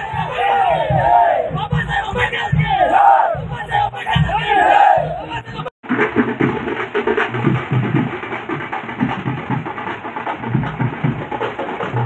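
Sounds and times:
bass drums and snare drums: 0.0s - 12.0s.

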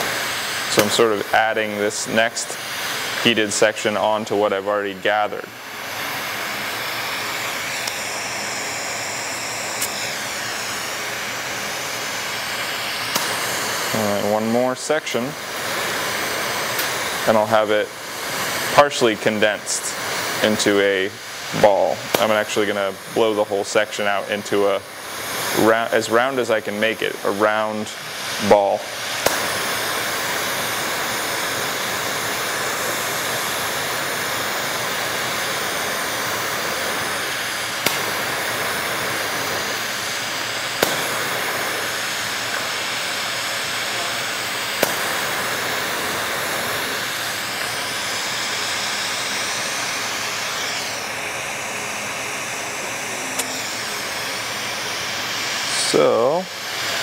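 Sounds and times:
torch flame hissing: 0.0s - 57.0s.

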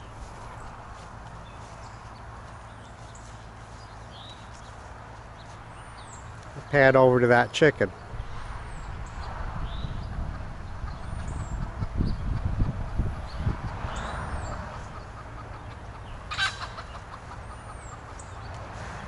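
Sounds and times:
low rumble on microphone: 8.1s - 15.0s
chicken clucking: 14.4s - 18.5s.

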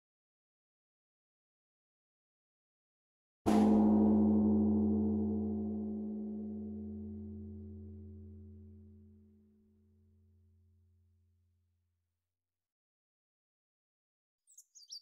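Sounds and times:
large bell ringing: 3.5s - 9.0s.

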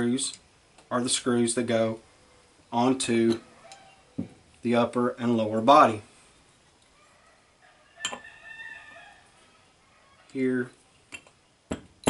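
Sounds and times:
faint wavering animal call: 3.4s - 4.2s.

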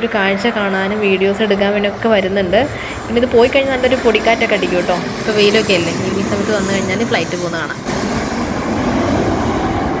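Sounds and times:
jet airliner engine noise: 0.0s - 10.0s.

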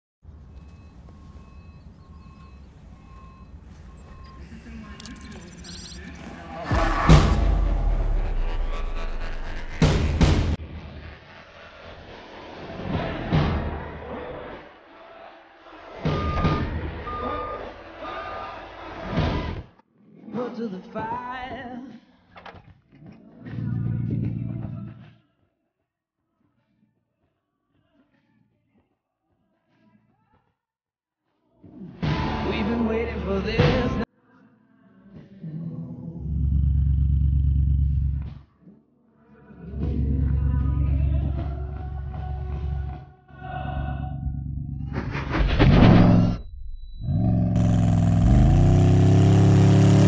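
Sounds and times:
truck warning beeper: 0.3s - 9.8s, 16.2s - 17.7s
loud rushes of noise: 3.2s - 14.8s, 47.6s - 50.0s
loud hit: 6.5s - 10.8s
car engine running deep note: 6.7s - 10.6s, 47.3s - 50.0s.

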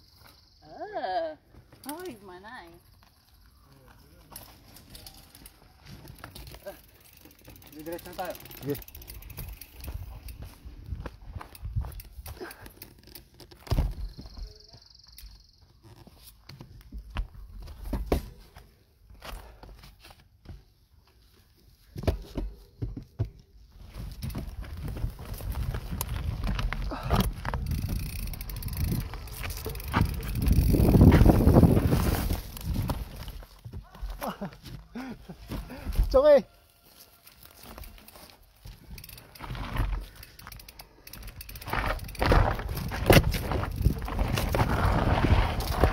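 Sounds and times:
bike rattling over rocks: 4.2s - 14.4s, 23.8s - 34.2s, 37.4s - 45.9s
wind rumbling on microphone: 24.3s - 33.4s, 41.7s - 45.9s.

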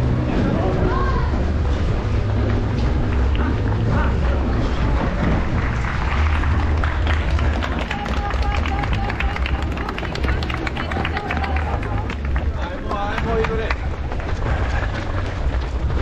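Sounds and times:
people chattering: 0.0s - 15.8s
running footsteps on pavement: 0.9s - 16.0s.

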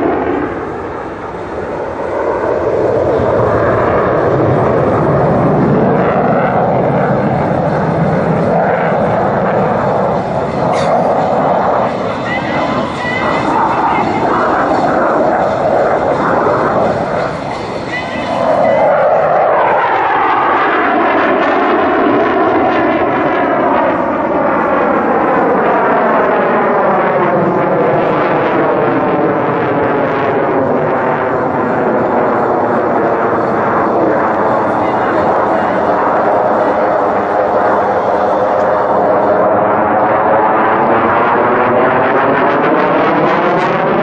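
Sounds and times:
jet engines roaring in afterburner: 0.0s - 44.0s.

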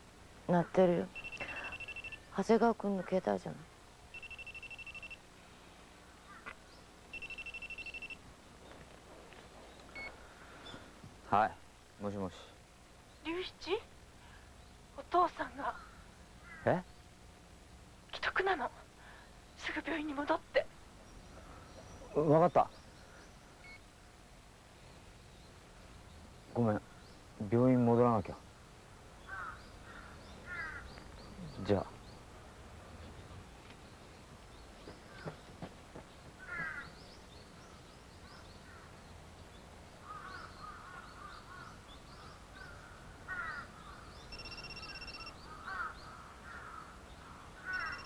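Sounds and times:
faint bird calling: 1.1s - 2.4s, 4.1s - 5.2s, 6.0s - 8.2s, 15.5s - 16.9s, 29.2s - 31.9s, 40.0s - 48.0s
electronic telephone ringing: 1.2s - 2.2s, 4.1s - 5.2s, 7.1s - 8.2s, 44.3s - 45.4s, 47.7s - 48.0s.

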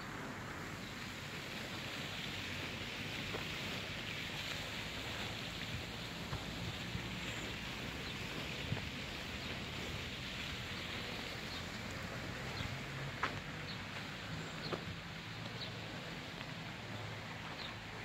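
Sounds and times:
steady outdoor hiss: 0.0s - 18.0s.

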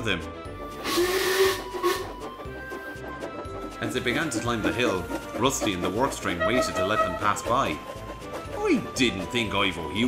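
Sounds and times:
soft background music: 0.0s - 10.0s
steam locomotive hissing: 0.3s - 10.0s.

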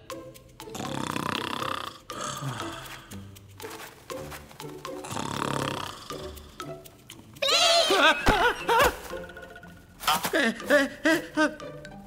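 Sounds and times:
light background music: 0.0s - 12.0s
cartoon character snoring loudly: 0.7s - 3.2s, 5.0s - 6.6s.

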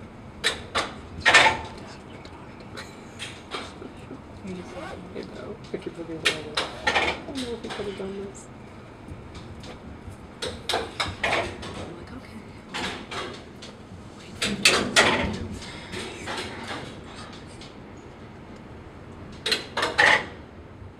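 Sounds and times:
elevator car clunking and clattering: 0.0s - 18.4s, 19.0s - 20.6s.

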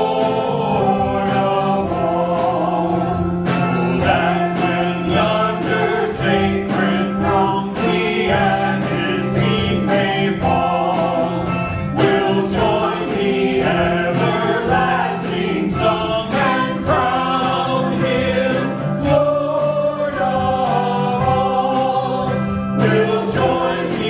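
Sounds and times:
group singing worship song: 0.0s - 24.0s
instrumental accompaniment with beat: 0.0s - 24.0s.

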